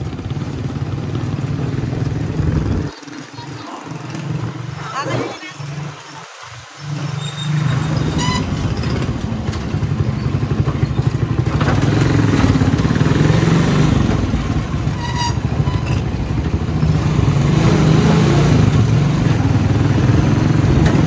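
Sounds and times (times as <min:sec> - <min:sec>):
motorcycle engine running: 0:00.0 - 0:06.0, 0:06.8 - 0:21.0
road and wind noise: 0:00.0 - 0:21.0.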